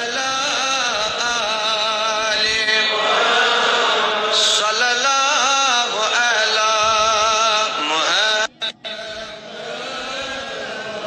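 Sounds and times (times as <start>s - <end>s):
person singing devotional chant: 0.0s - 11.0s.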